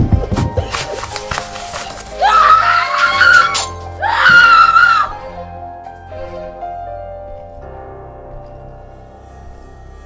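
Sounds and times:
woman screaming: 0:02.2 - 0:05.2.

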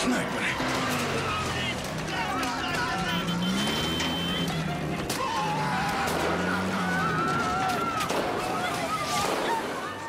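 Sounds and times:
vehicle noise: 0:00.0 - 0:10.0.

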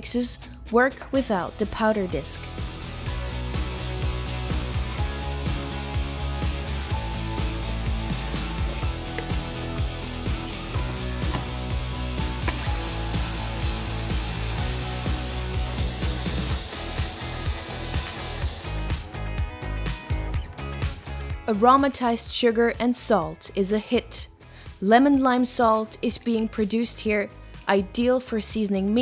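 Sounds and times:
background music: 0:00.0 - 0:29.0
hand blender grinding spices: 0:12.4 - 0:19.2.

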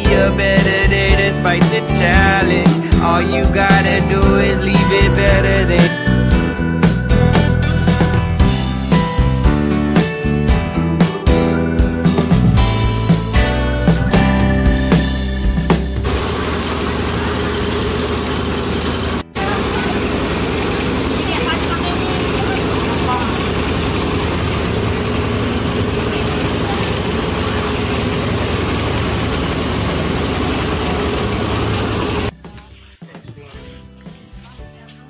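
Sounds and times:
engine humming steadily: 0:00.0 - 0:32.7.

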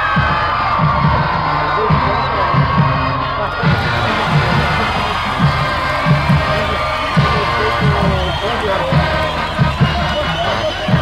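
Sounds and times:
bass drum beats: 0:00.0 - 0:11.0
crowd noise: 0:00.0 - 0:11.0
brass marching band playing: 0:03.5 - 0:11.0.

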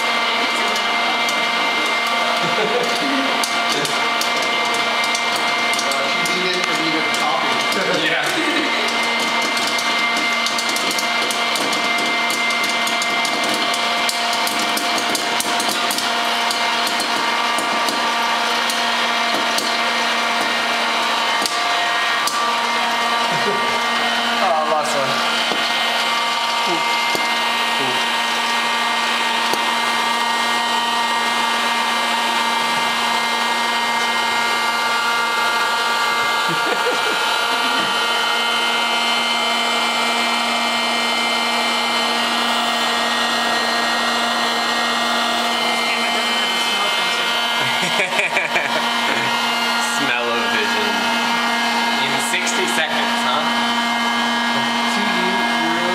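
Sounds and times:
machine motor and fan hum: 0:00.1 - 0:55.9.

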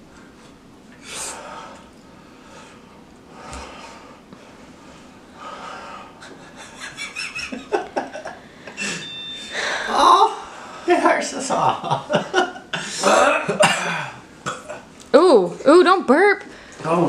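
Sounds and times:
men breathing hard: 0:01.0 - 0:06.8.

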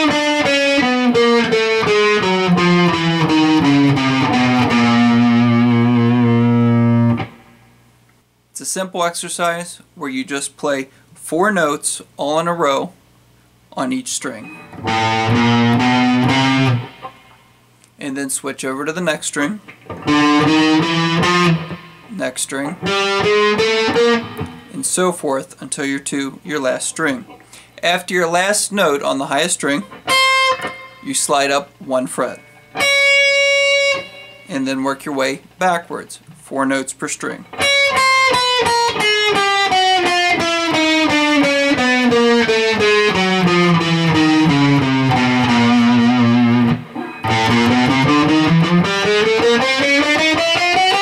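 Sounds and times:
electric guitar single notes: 0:00.0 - 0:07.8, 0:14.4 - 0:17.4, 0:19.9 - 0:24.8, 0:29.8 - 0:31.3, 0:32.2 - 0:34.6, 0:37.5 - 0:51.0.

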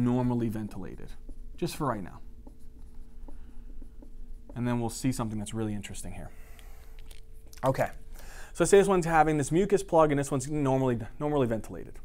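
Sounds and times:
marker writing on whiteboard: 0:00.0 - 0:06.9
faint steady hum: 0:00.0 - 0:12.0.

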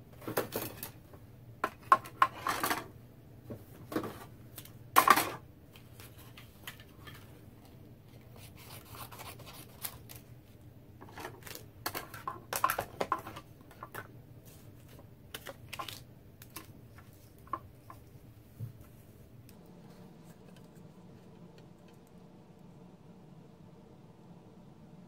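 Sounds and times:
paper rustling: 0:08.1 - 0:18.0.

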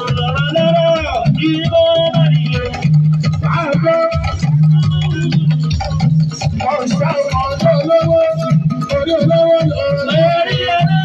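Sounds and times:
band with pulsing bass beat: 0:00.0 - 0:11.0
man singing into a microphone: 0:00.0 - 0:11.0.

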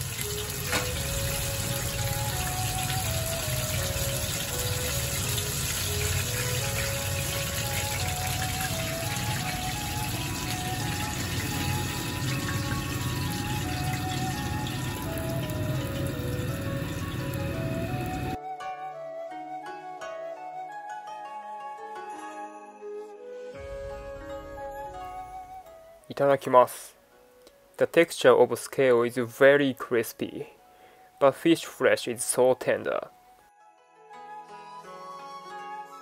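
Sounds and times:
hot oil sizzling: 0:00.0 - 0:18.4
simple background melody: 0:00.0 - 0:36.0.

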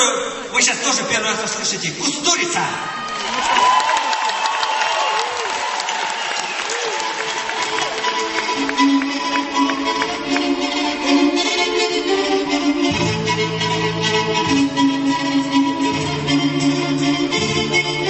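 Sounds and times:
audience applause: 0:02.9 - 0:10.6
violins playing sliding phrases: 0:06.8 - 0:18.0.

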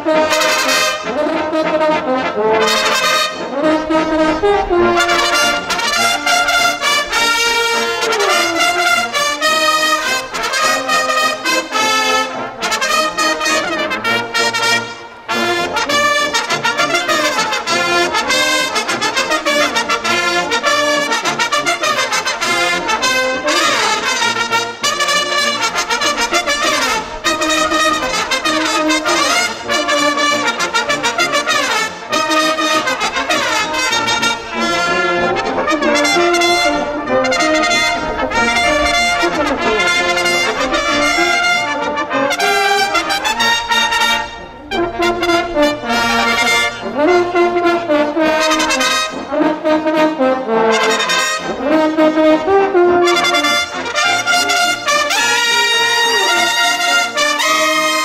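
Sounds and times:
brass fanfare: 0:00.0 - 0:58.0.

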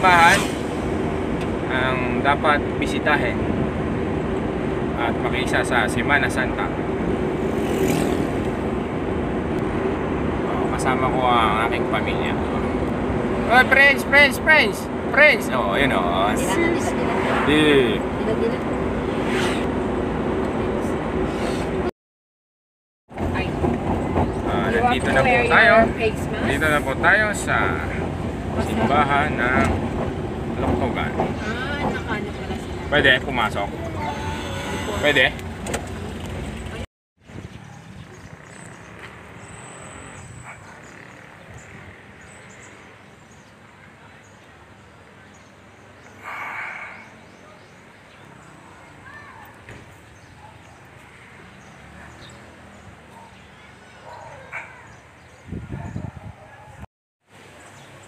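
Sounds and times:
vehicle engine and road noise: 0:00.0 - 0:21.9, 0:23.1 - 0:58.0
quiet outdoor background: 0:23.1 - 0:58.0.

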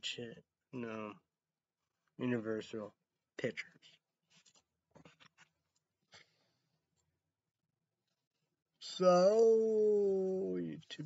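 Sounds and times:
faint rustles of cap: 0:04.2 - 0:07.1.

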